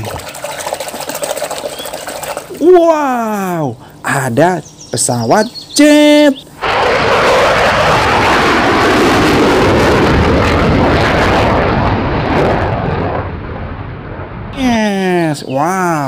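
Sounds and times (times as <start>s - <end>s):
jet roaring past: 6.4s - 14.5s.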